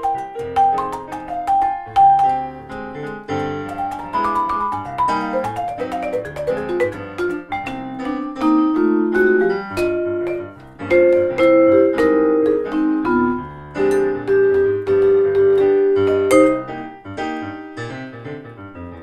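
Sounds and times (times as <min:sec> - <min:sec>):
electric piano chords: 0:00.0 - 0:19.0
vibraphone notes ringing: 0:09.8 - 0:16.8.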